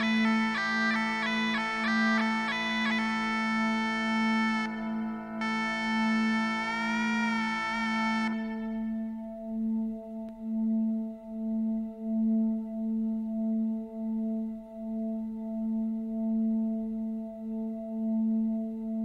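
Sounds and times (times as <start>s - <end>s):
bagpipe drones: 0.0s - 9.6s
bagpipe chanter melody: 0.0s - 9.7s.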